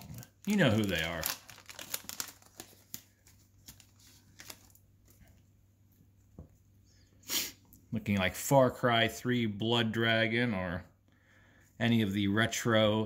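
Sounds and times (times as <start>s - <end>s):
card pack wrapper tearing: 0.0s - 4.8s.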